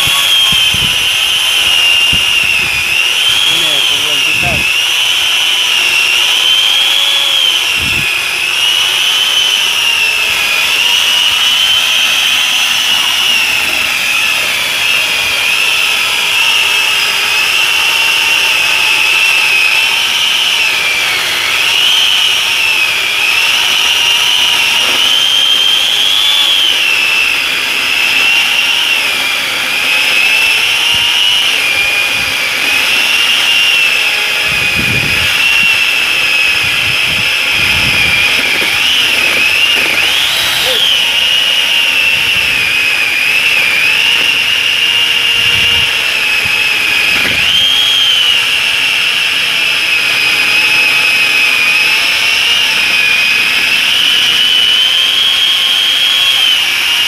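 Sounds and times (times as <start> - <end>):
chainsaw attachment cutting wood: 0.0 - 57.0.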